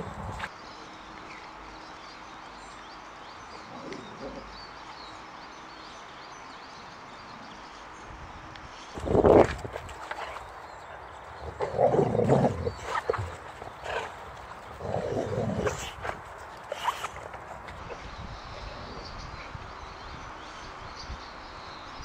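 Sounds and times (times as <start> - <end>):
dog growling: 11.2 - 17.8.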